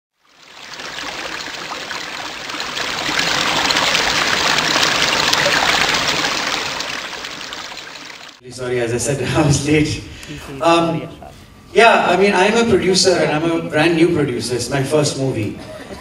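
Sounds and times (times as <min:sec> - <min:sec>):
water trickling: 0:00.2 - 0:08.4.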